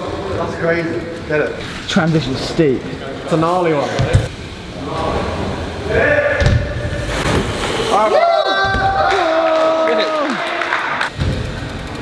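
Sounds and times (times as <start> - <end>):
bike tyres rolling on wooden ramps: 0.0 - 12.0.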